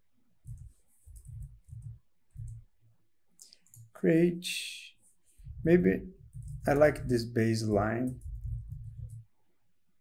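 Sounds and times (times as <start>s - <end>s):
keyboard and mouse clicks: 0.4s - 2.6s, 3.4s - 4.0s, 6.2s - 9.2s.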